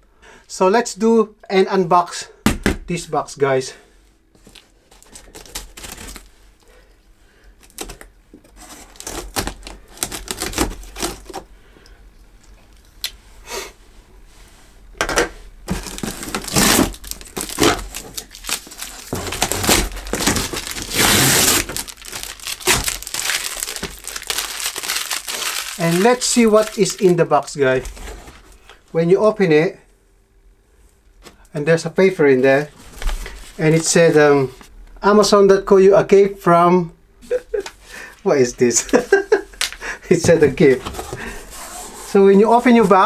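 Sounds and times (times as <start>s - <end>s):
packing tape peeled off cardboard: 4.4s - 6.4s, 7.6s - 11.4s, 15.7s - 27.2s
plastic tape crinkling and ripping: 4.4s - 6.4s, 7.6s - 11.4s, 15.7s - 27.3s.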